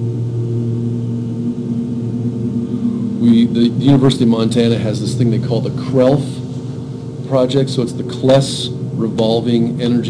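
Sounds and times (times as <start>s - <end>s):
low hum with pitched overtones: 0.0s - 10.0s.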